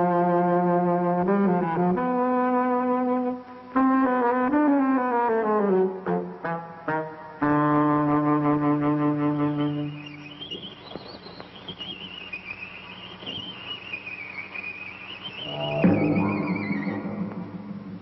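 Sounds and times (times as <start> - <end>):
brass film score music: 0.1 - 10.0, 15.4 - 18.0
high wavering tone: 15.2 - 18.0.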